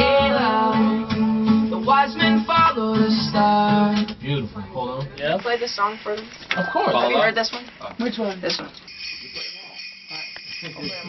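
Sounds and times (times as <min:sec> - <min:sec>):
high jingling bells: 0:08.9 - 0:11.0.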